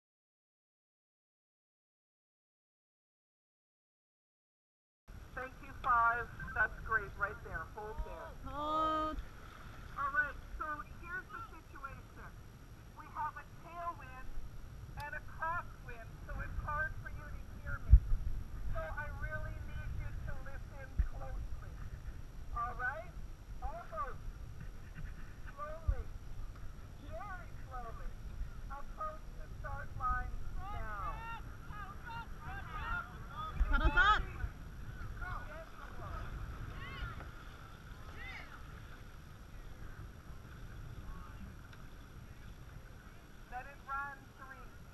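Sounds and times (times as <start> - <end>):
wind and water rumble: 5.1 - 44.9
people shouting short calls: 30.6 - 34.5.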